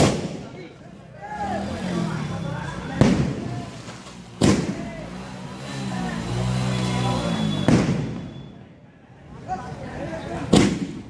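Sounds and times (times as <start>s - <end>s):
firecrackers banging: 0.0s - 0.8s, 1.6s - 8.6s, 10.4s - 11.0s
people's voices: 0.0s - 11.0s
fountain fireworks spraying: 1.6s - 8.4s.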